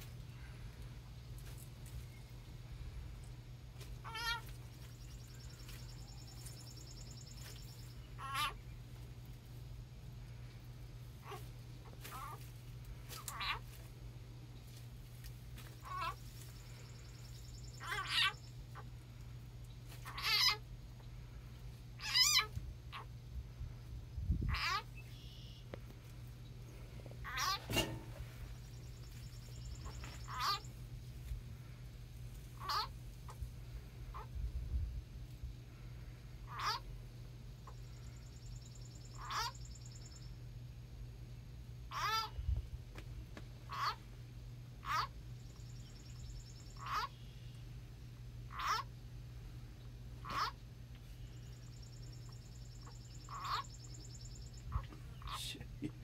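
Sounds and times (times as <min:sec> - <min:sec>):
steady low hum: 0:00.0 - 0:56.0
short wavering animal calls: 0:08.1 - 0:08.6, 0:13.1 - 0:13.7, 0:17.7 - 0:18.9, 0:20.0 - 0:20.6, 0:22.0 - 0:23.1, 0:29.7 - 0:30.7, 0:32.6 - 0:32.9, 0:36.5 - 0:36.9, 0:39.1 - 0:39.9, 0:41.9 - 0:42.4, 0:43.7 - 0:44.0, 0:44.8 - 0:45.2, 0:46.8 - 0:47.3, 0:48.5 - 0:48.9, 0:50.2 - 0:50.6, 0:52.7 - 0:55.5.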